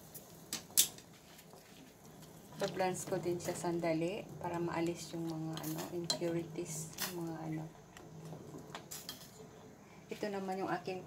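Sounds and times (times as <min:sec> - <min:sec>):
water boiling: 0:00.0 - 0:11.0.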